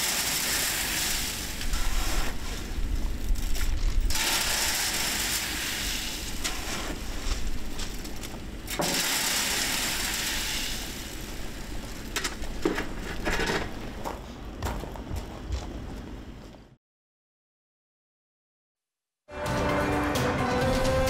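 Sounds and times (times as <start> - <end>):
concrete rushing down a steel chute: 4.1 - 7.0, 8.7 - 11.4.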